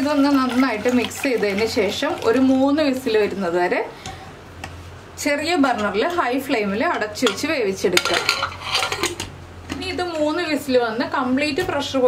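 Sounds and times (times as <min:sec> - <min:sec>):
woman speaking: 0:00.0 - 0:03.9, 0:05.2 - 0:08.4, 0:09.7 - 0:12.0.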